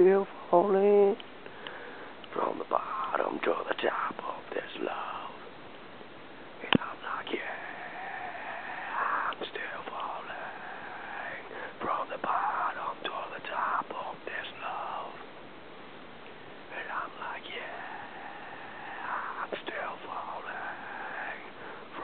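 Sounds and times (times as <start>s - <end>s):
person whispery voice: 2.3s - 5.4s, 6.6s - 15.2s, 16.7s - 22.0s.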